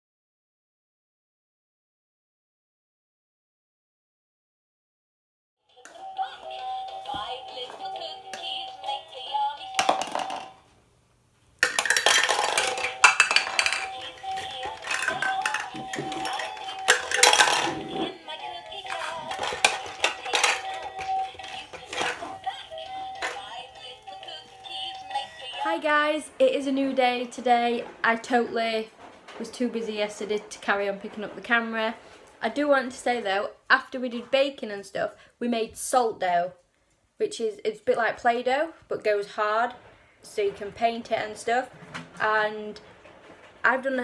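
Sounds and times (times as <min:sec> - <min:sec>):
toy playing tinny tune: 0:05.7 - 0:10.6, 0:12.5 - 0:25.8
plastic blocks clinking: 0:09.6 - 0:10.6, 0:11.6 - 0:25.7.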